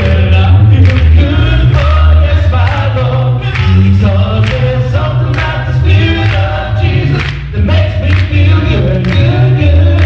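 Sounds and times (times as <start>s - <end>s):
deep bass voice singing: 0.0s - 10.0s
male group singing in harmony: 0.0s - 10.0s.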